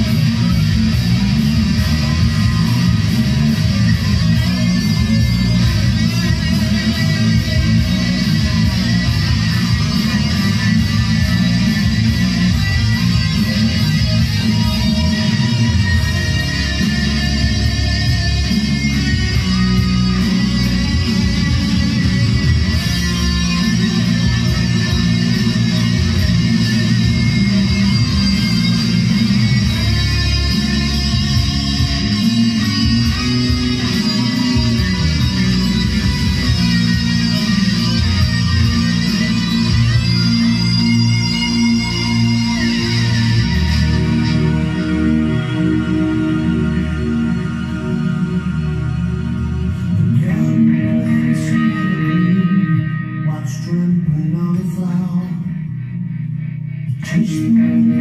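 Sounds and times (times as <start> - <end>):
electric guitar heavy metal: 0.0 - 58.0
sustained low notes: 0.0 - 58.0.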